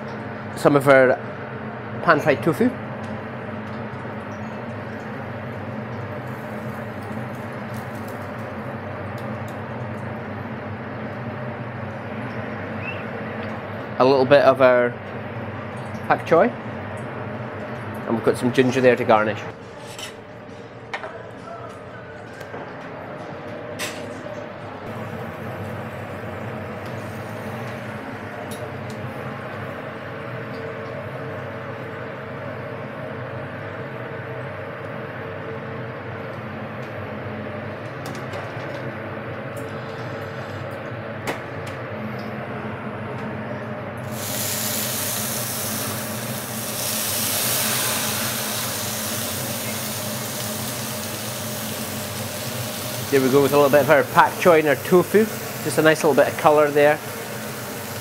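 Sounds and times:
kitchen machinery hum: 0.0 - 58.0
food cooking in a hot pan: 44.1 - 58.0
loud steam hiss: 44.1 - 58.0.

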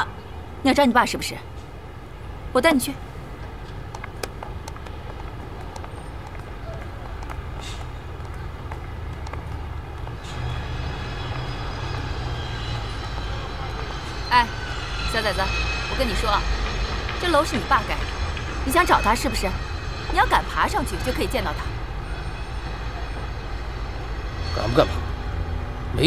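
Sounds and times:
distant road traffic rumble: 0.0 - 26.0.

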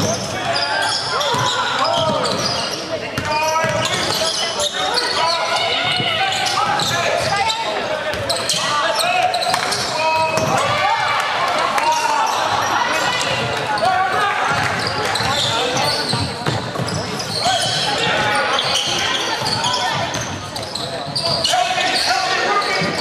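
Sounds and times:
players and spectators shouting: 0.0 - 16.4, 17.0 - 23.0.

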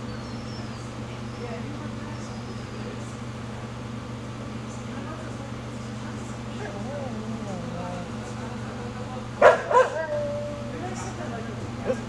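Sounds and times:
dog barking: 9.4 - 10.2.

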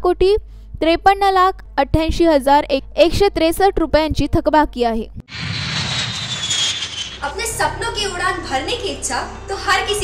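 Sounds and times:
jet engine whine: 5.3 - 7.6.

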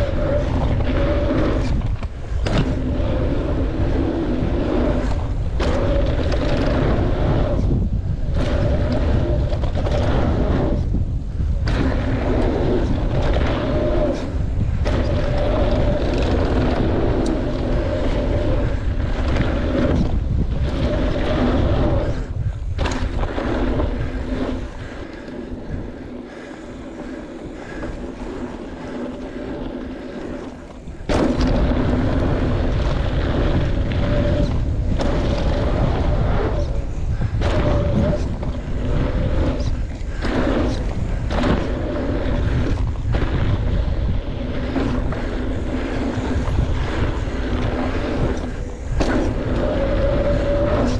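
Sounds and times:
steady whirring tone: 0.0 - 50.9
tyres rolling on dirt: 0.0 - 50.9
wind rushing over microphone: 0.0 - 50.9.

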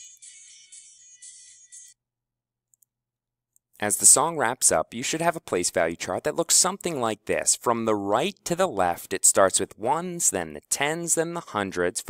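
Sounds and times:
tinny recorded song with beat: 0.0 - 2.0
man talking: 3.8 - 12.0.

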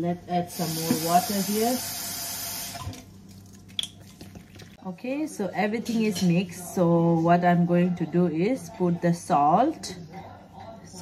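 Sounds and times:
wet drips and squishes: 3.3 - 4.8.

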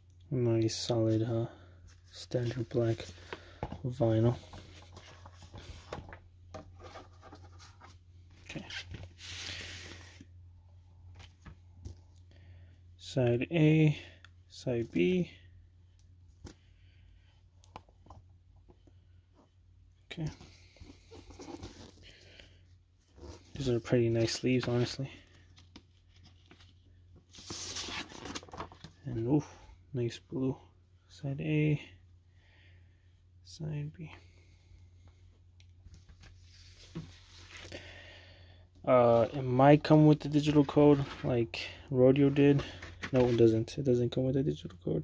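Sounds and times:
record sleeves rustling: 0.7 - 10.4, 17.5 - 29.5, 35.7 - 37.7, 39.0 - 43.8
paper sleeve rustling: 23.1 - 28.9, 42.2 - 43.5.

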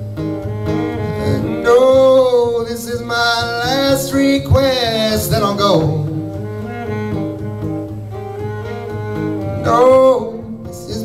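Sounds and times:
bowed cello low notes: 0.0 - 11.0
strummed acoustic guitar: 0.0 - 11.0.

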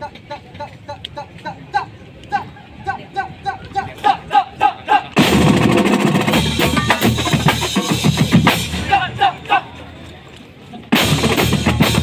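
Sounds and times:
full drumline playing: 5.2 - 9.2, 10.9 - 12.0.

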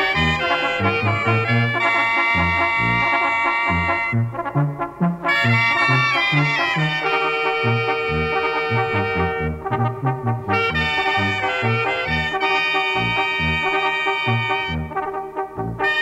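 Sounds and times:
trumpets and trombones: 0.0 - 16.0
tuba bass line: 0.0 - 16.0.

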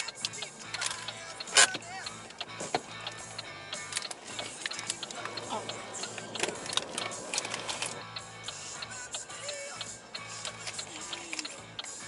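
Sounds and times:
music from car radio: 0.0 - 12.0
repeating ticking: 0.0 - 12.0.

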